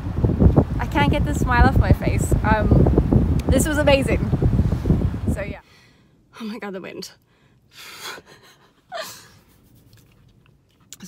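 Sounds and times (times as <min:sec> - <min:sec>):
woman laughing breathily: 0:07.8 - 0:09.5.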